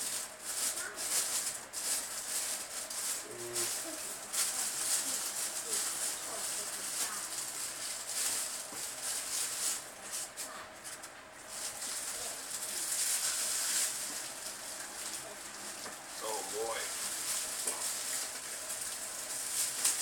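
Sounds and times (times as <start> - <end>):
packaging rustling and crinkling: 0.0 - 20.0.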